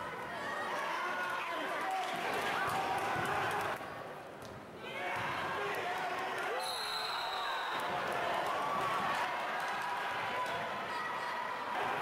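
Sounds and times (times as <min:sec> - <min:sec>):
crowd voices and shouts: 0:00.0 - 0:04.2, 0:04.8 - 0:12.0
referee's whistle: 0:06.6 - 0:07.9.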